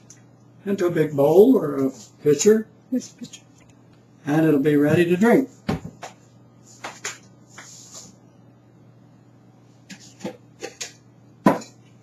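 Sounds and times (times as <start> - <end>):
faint steady hum: 0.0 - 12.0
kitchenware knocks and clicks: 9.9 - 11.8.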